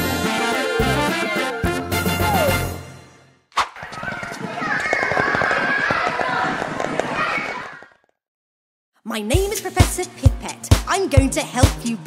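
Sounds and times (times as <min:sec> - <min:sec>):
cartoon running footsteps: 0:03.6 - 0:08.2.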